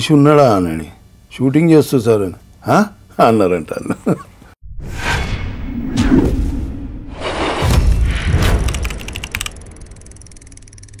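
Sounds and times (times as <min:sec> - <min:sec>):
sharp typing clicks: 0:08.5 - 0:11.0.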